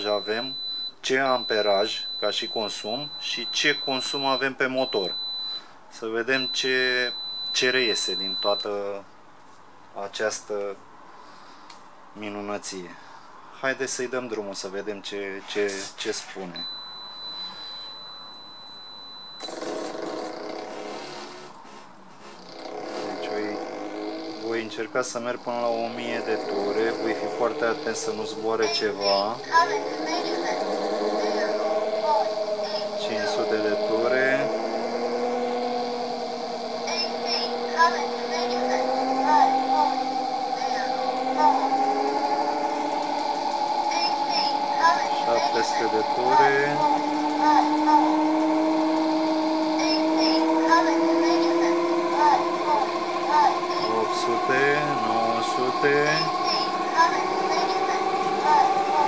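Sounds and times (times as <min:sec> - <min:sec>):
electric motor humming: 0:22.2 - 0:59.0
thin high steady tone: 0:23.1 - 0:59.0.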